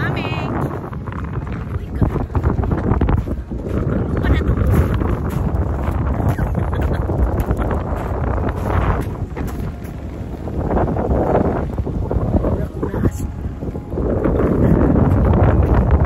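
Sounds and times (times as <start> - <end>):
gusty wind buffeting microphone: 0.0 - 16.0.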